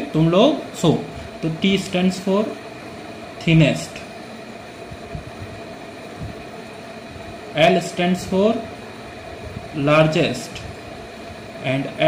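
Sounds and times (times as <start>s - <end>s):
air conditioning hum: 0.0s - 12.0s
soft low bumps: 4.9s - 6.5s.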